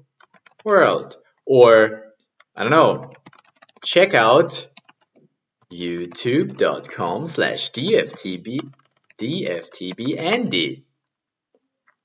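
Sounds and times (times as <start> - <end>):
man speaking: 0.7 - 3.2, 3.8 - 4.8, 5.7 - 10.8.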